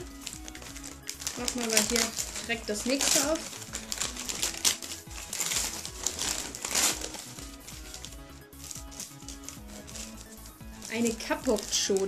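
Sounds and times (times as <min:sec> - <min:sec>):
background music with steady beat: 0:00.0 - 0:12.0
gift-wrap paper crinkling: 0:00.0 - 0:12.0.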